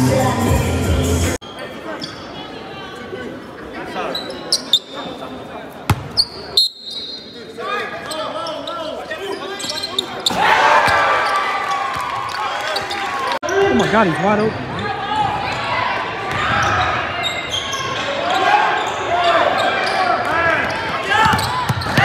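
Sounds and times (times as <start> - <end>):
basketball bouncing: 5.9 - 6.2
sneakers squeaking on hardwood: 5.9 - 7.3, 8.1 - 11.0, 19.6 - 22.0
crowd shouting and cheering: 10.2 - 22.0.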